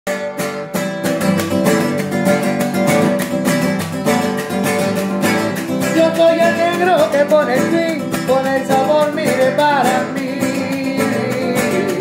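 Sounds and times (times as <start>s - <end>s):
acoustic guitar strumming chords: 0.1s - 12.0s.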